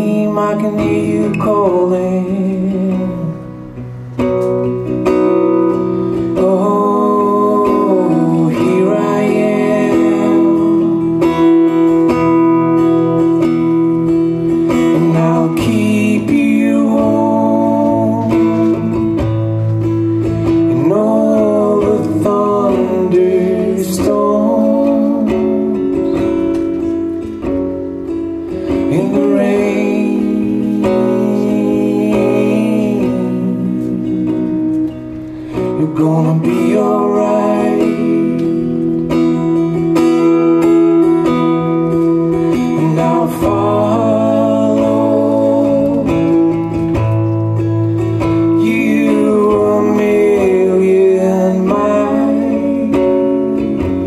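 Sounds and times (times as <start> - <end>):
person singing: 0.0 - 3.8, 5.1 - 27.4, 28.4 - 54.0
acoustic guitar: 0.0 - 54.0.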